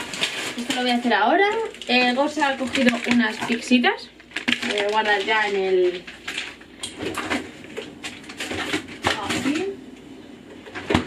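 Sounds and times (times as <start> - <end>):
frozen packages knocking: 0.0 - 9.8.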